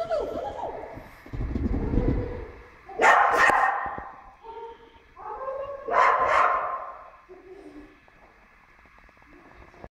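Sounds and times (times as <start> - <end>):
puppy barking: 3.0 - 4.1, 5.3 - 7.1.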